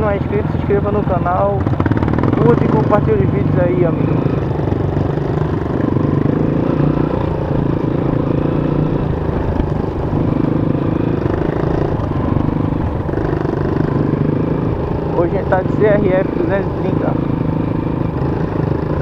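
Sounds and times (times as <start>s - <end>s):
dirt bike engine running: 0.0s - 19.0s.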